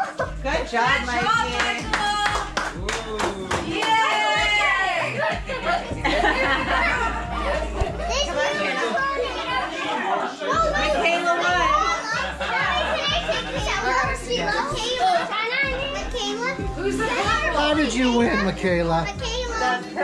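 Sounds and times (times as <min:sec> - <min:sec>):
children talking and shouting: 0:00.0 - 0:20.0
music playing: 0:00.0 - 0:20.0.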